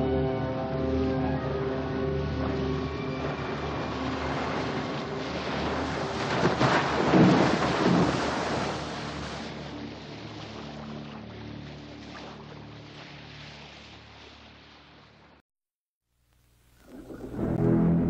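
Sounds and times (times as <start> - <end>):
low sustained film score notes: 0.0 - 6.4, 16.6 - 18.0
sea water rushing and splashing: 0.5 - 15.4.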